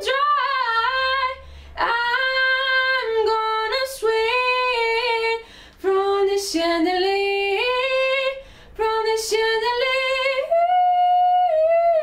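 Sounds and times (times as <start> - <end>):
woman singing a cappella: 0.0 - 12.0.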